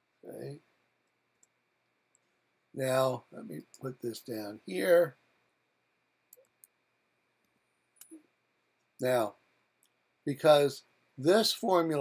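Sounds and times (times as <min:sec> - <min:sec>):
computer mouse clicks: 0:06.3 - 0:06.8.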